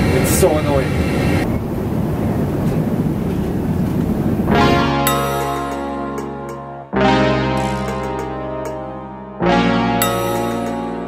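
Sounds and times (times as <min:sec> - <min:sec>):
airliner cabin rumble: 0:00.0 - 0:04.6.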